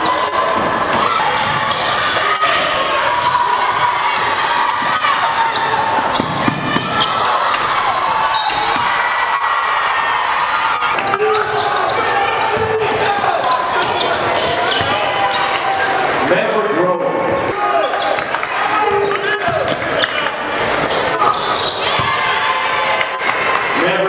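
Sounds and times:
sneakers squeaking: 0.0s - 9.1s, 10.8s - 16.3s, 17.0s - 22.5s
crowd voices and shouts: 0.0s - 24.0s
basketball bouncing on court: 5.9s - 7.7s, 13.4s - 15.0s, 21.6s - 22.3s.

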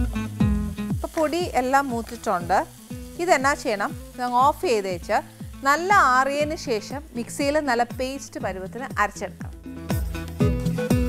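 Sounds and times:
background music: 0.0s - 11.0s
curry sizzling in a frying pan: 0.0s - 11.0s
woman talking: 1.0s - 9.5s.

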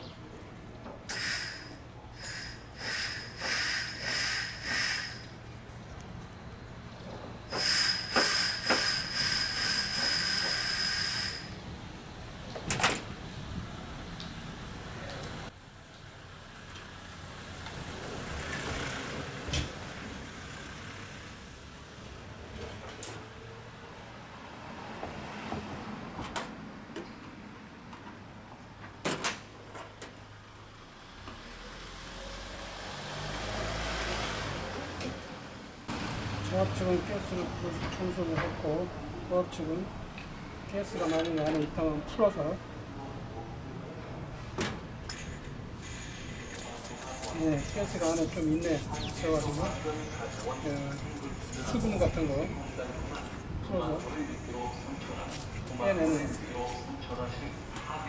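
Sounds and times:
pressurised gas hissing in spurts: 1.1s - 5.4s, 7.5s - 11.6s, 45.1s - 50.6s.

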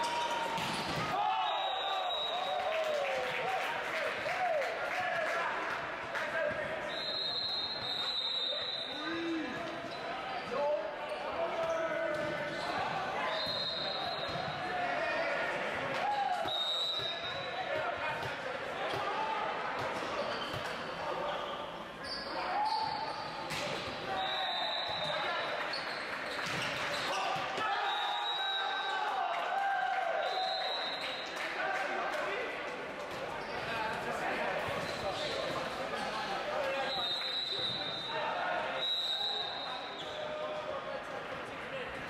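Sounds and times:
sneakers squeaking on court: 33.3s - 33.7s.

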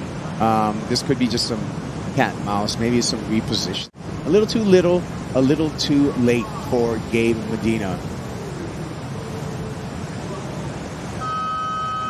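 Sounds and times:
steady background rush: 0.0s - 12.0s
contest horn held tone: 11.2s - 12.0s.

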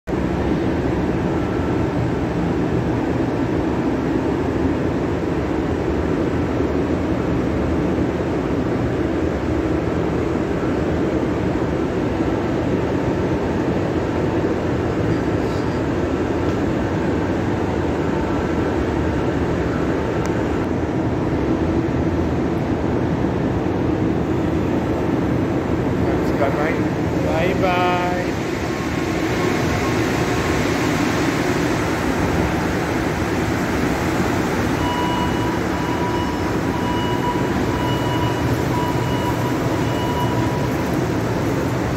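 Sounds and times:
subway train rumbling slowly: 0.1s - 41.9s.

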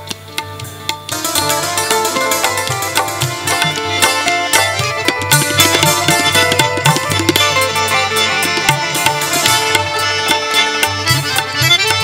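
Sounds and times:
hand drum strokes: 0.0s - 12.0s
harmonium and keyboard melody: 0.0s - 12.0s.

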